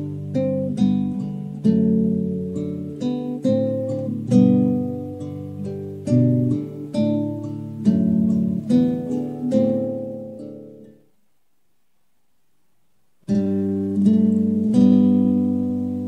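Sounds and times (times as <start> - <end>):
acoustic guitar fingerpicking: 0.0 - 11.2, 13.2 - 16.0.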